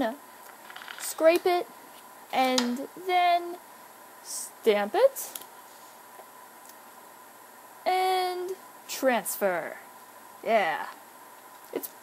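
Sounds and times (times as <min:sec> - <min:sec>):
woman speaking: 0:00.0 - 0:00.2, 0:01.0 - 0:01.7, 0:02.3 - 0:03.6, 0:04.2 - 0:05.4, 0:07.9 - 0:11.0, 0:11.7 - 0:12.0
faint high-pitched hum: 0:00.0 - 0:12.0.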